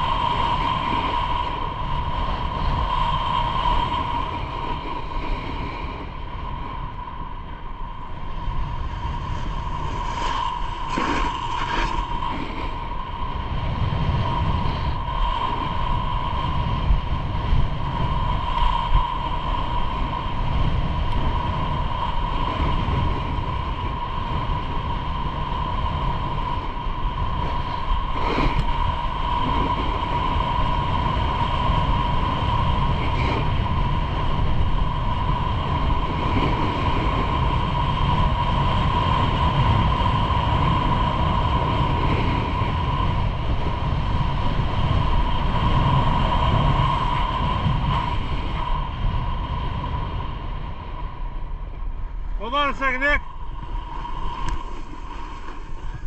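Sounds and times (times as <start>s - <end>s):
wind rushing over microphone: 0.0s - 56.0s
skis sliding on packed snow: 9.2s - 12.8s, 52.4s - 56.0s.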